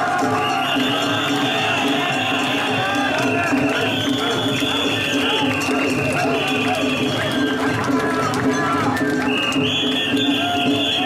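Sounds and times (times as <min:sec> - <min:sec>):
crowd chanting and shouting: 0:00.0 - 0:11.0
festival music with high held notes: 0:00.0 - 0:11.0.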